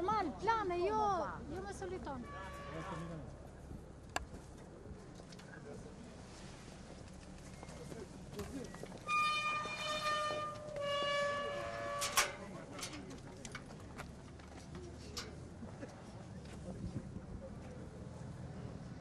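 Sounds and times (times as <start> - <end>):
street noise: 0.0 - 19.0
horn blasts: 2.2 - 3.3, 9.1 - 12.4.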